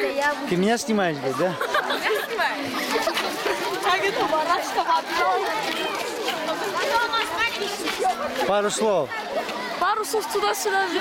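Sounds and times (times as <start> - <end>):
boys chattering: 0.0 - 11.0.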